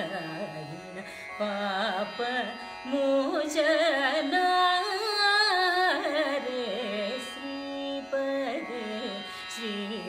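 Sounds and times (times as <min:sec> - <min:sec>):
woman singing ornamented melody: 0:00.0 - 0:10.0.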